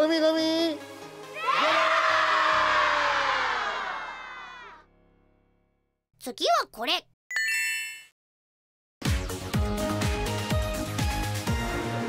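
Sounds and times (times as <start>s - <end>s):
light background music: 0.0s - 1.9s
children shouting a cheer: 1.4s - 4.8s.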